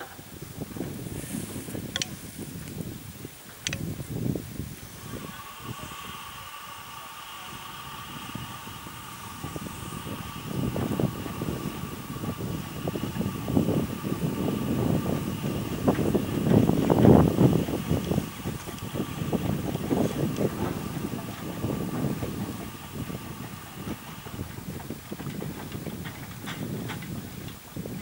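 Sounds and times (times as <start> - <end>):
steam locomotive chuffing: 0.0 - 28.0.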